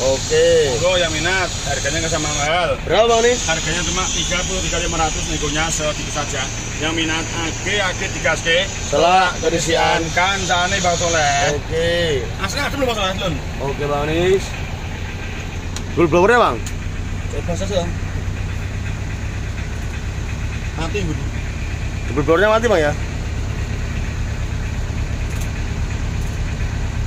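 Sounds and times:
people talking: 0:00.0 - 0:14.6, 0:15.8 - 0:18.5, 0:20.6 - 0:23.1
diesel engine idling: 0:00.0 - 0:27.0.

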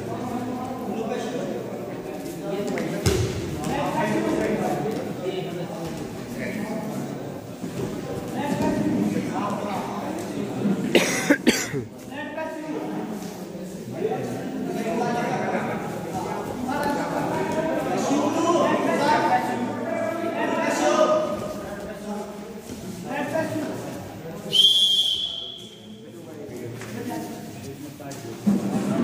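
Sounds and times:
voices in a hall: 0:00.0 - 0:29.0
referee's whistle long blast: 0:24.5 - 0:25.8.

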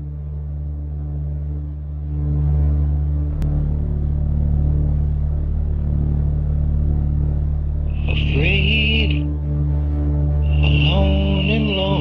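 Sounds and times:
low synthesizer drone: 0:00.0 - 0:12.0.

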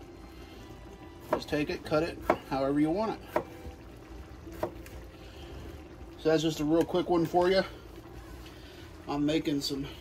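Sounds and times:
knife chopping on cutting board: 0:02.2 - 0:02.5, 0:03.3 - 0:03.6, 0:04.5 - 0:04.8.

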